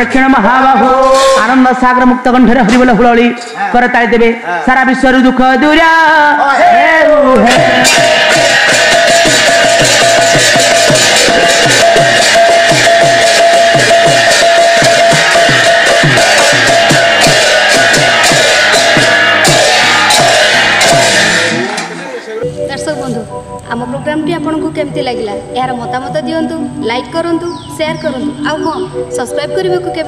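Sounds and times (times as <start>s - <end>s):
two-headed drum played fast: 7.2s - 22.0s
brass hand cymbals clashing: 7.4s - 22.0s
steady ringing tone: 7.5s - 21.6s.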